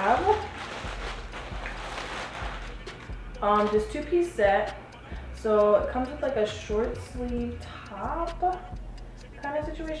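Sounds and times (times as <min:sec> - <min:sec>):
plastic bag crinkling: 0:00.0 - 0:03.8.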